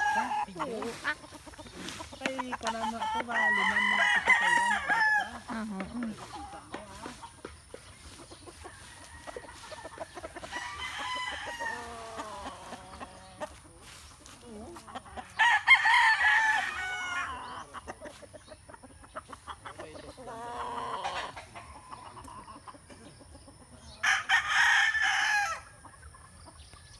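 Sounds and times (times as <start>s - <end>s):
roosters crowing: 0.0s - 25.9s.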